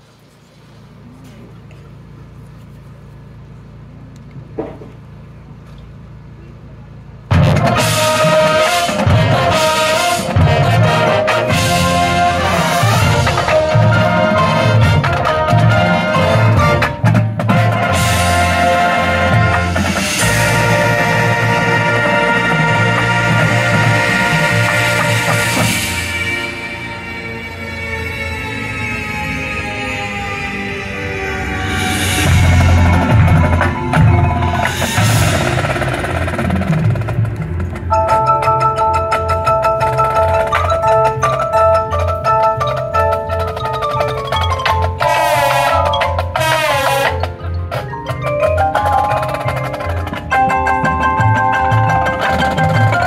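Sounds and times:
percussion: 7.2s - 28.2s, 31.4s - 53.0s
pulsing low bass line: 7.2s - 40.5s
sharp percussion hits: 7.3s - 29.3s, 30.0s - 53.0s
mallet keyboards playing fast notes: 7.3s - 30.0s, 31.1s - 53.0s
brass holding chords: 7.3s - 36.7s, 44.9s - 47.7s
cymbal crashes: 30.0s - 37.2s
low bass drum pulses: 32.2s - 38.3s.

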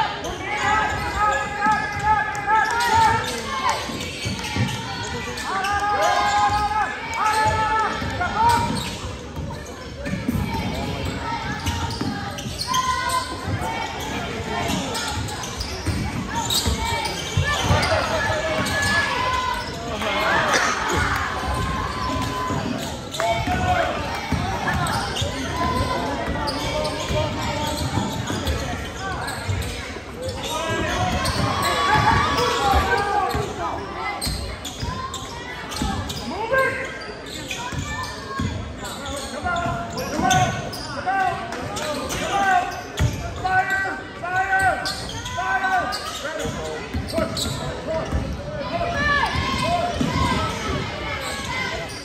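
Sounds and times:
shoes squeaking: 8.4s - 33.6s, 41.7s - 48.3s.

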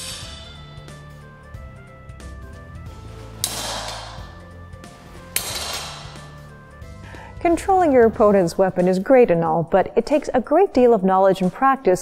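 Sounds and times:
steel swords clashing: 0.0s - 0.9s, 3.4s - 4.5s, 5.2s - 6.5s.

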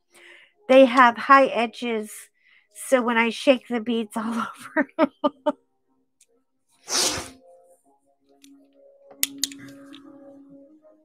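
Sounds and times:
faint background music: 0.0s - 11.0s
short hissing burst: 6.9s - 7.4s.

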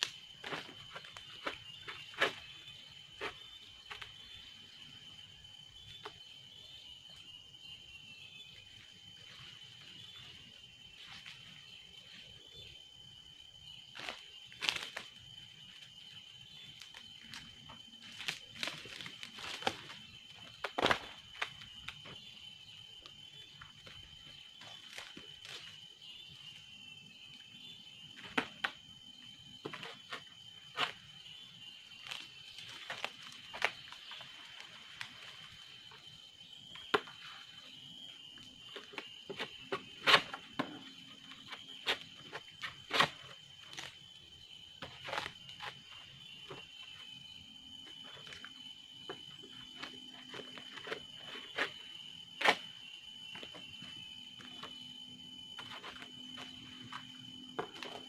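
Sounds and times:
high-pitched insect drone: 0.0s - 58.0s.

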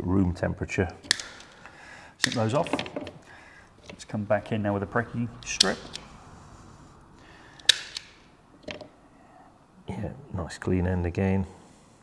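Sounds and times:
wire stripper clicking: 1.0s - 3.0s, 5.4s - 6.2s, 7.5s - 8.8s.

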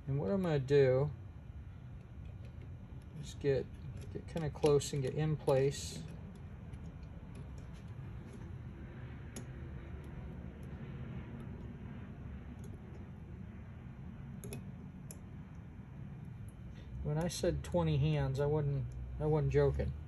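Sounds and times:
steady low hum: 0.0s - 20.0s
light clicks of metal parts: 1.8s - 13.2s, 14.4s - 18.0s.

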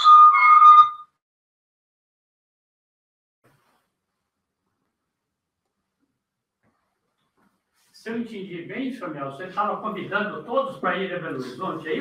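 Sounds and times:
high whistle-like tone: 0.0s - 1.2s.

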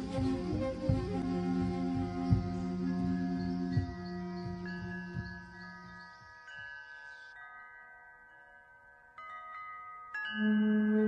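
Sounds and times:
metal chimes ringing: 2.2s - 11.0s.

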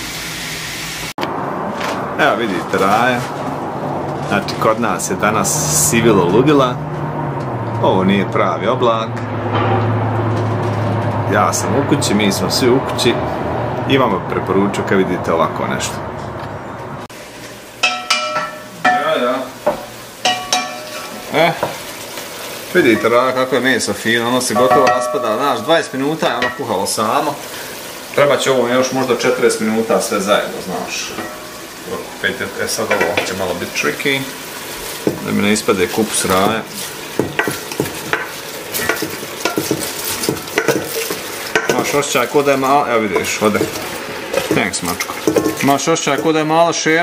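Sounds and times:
pot of food sizzling: 0.0s - 6.8s, 17.1s - 47.0s
wooden spoon stirring stew: 34.6s - 46.4s.

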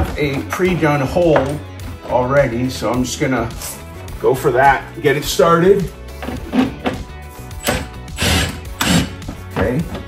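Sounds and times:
cordless drill driving a bolt: 7.6s - 9.2s.

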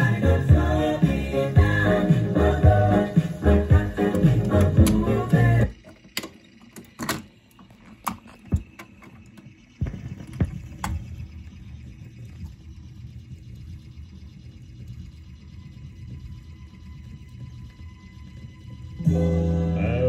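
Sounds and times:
turntable mechanism rumble: 0.0s - 20.0s
record changer clicks: 2.9s - 11.3s.

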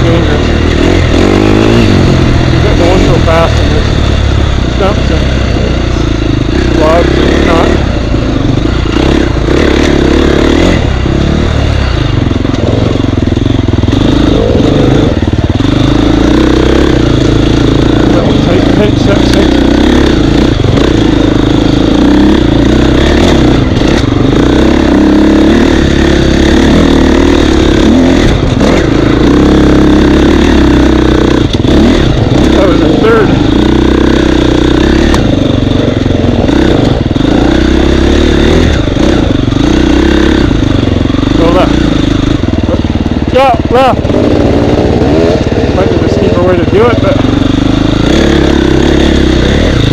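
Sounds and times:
dirt bike engine revving: 0.0s - 49.9s.

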